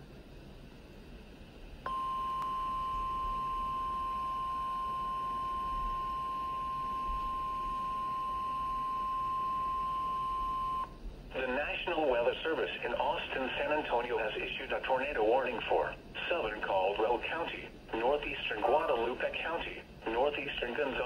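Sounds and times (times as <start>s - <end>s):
steady alarm beep tone: 1.9s - 10.9s.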